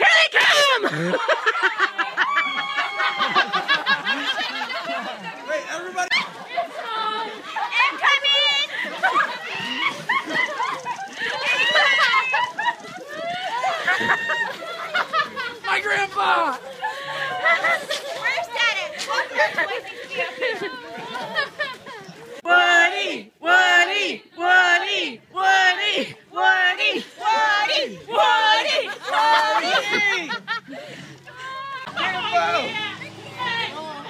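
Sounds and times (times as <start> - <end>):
people chattering and calling out: 0.0 - 34.0.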